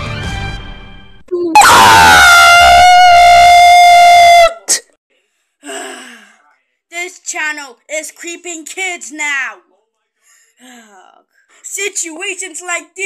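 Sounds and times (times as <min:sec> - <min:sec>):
loud distorted high-pitched scream: 0:01.6 - 0:04.8.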